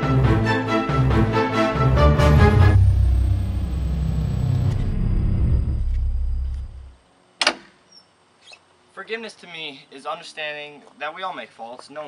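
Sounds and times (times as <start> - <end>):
deep low music rumble: 0.0 - 7.0.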